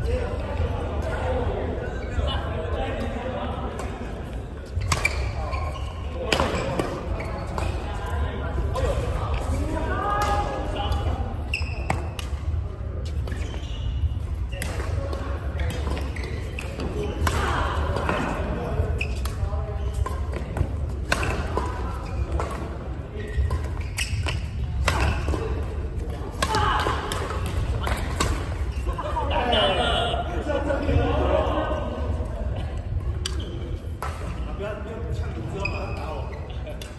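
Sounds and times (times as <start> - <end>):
people's voices: 24.6 - 36.9.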